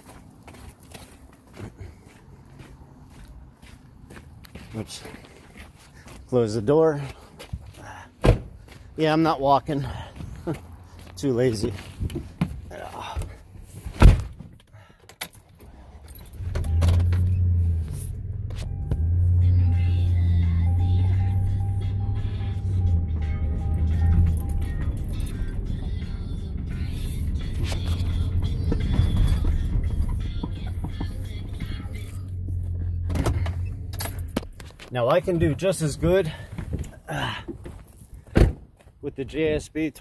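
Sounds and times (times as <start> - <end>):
vehicle engine running: 16.3 - 34.8
vehicle door shutting: 16.4 - 17.5, 33.0 - 34.5, 38.3 - 38.7
music playing: 18.9 - 33.1.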